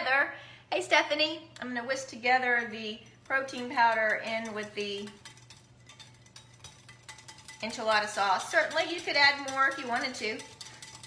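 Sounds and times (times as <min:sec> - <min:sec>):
whisk clicking in glass bowl: 0:03.2 - 0:11.0.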